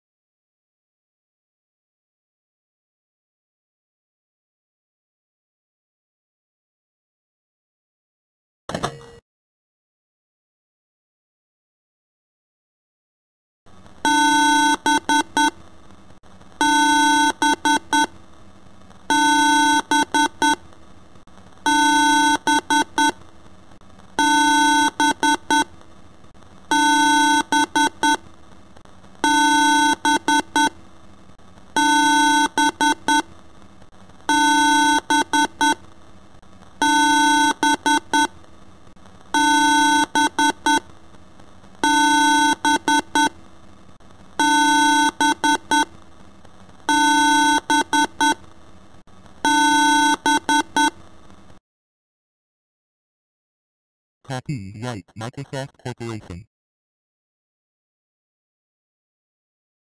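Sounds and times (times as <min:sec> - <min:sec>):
electronic beeping: 0:54.3 - 0:56.5.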